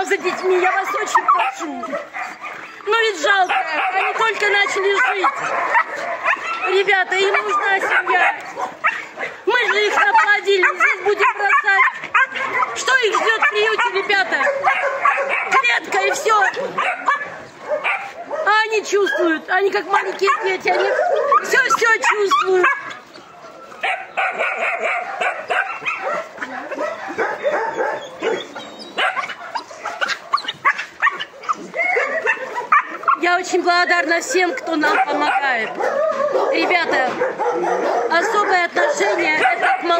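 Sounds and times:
puppies yipping and whining: 0:00.0 - 0:19.4, 0:20.0 - 0:33.3, 0:34.2 - 0:39.9
dogs barking: 0:00.0 - 0:39.9.

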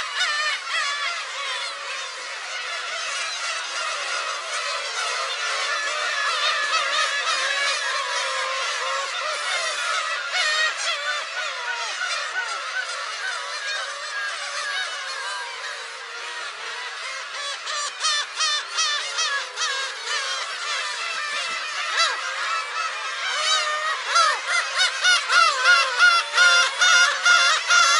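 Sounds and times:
gulls mewing calls: 0:00.0 - 0:27.9.

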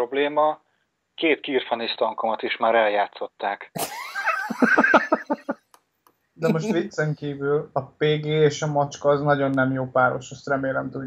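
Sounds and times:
person laughing heartily: 0:03.8 - 0:05.6, 0:06.4 - 0:06.9.

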